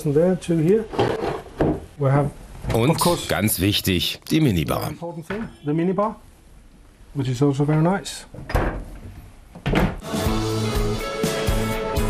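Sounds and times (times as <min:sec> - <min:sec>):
man's voice: 0:02.7 - 0:05.1.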